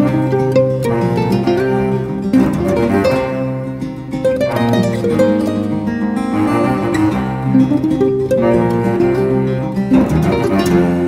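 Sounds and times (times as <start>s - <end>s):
acoustic guitars picking melody: 0.0s - 11.0s
bowed cello low note: 0.0s - 11.0s.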